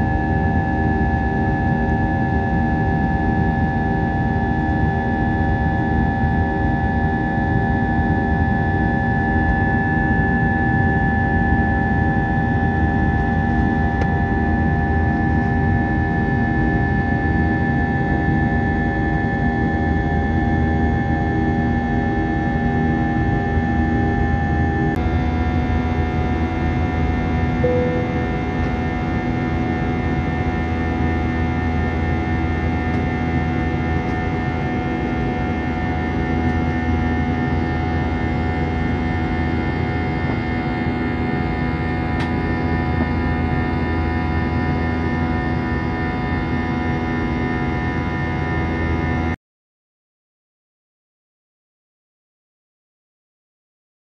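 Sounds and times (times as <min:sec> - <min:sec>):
airliner engines steady noise: 0:00.0 - 0:49.4.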